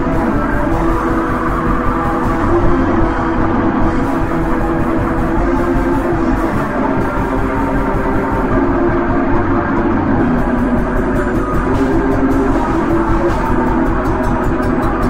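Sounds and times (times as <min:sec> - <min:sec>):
black metal song: 0:00.0 - 0:15.0
distorted guitar: 0:00.0 - 0:15.0
drums: 0:00.0 - 0:15.0.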